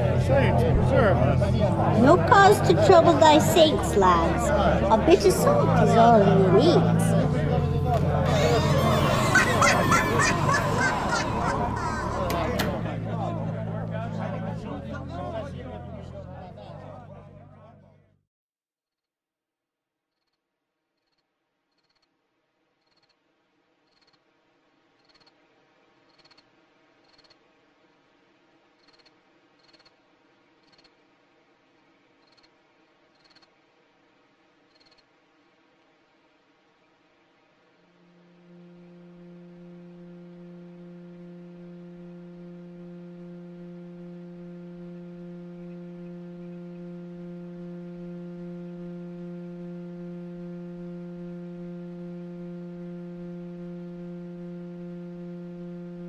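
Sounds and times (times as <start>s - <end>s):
low hum: 0.0s - 18.1s, 37.4s - 56.0s
low steady drone: 0.0s - 18.1s, 37.6s - 56.0s
high chirps of small animals: 8.4s - 12.3s
birds squawking: 8.4s - 12.6s.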